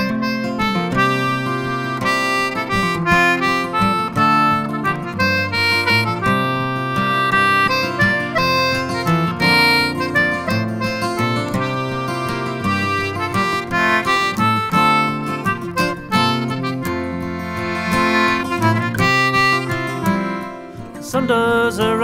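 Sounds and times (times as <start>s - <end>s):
reed instrument melody: 0.0s - 21.0s
plucked strings: 0.0s - 22.0s.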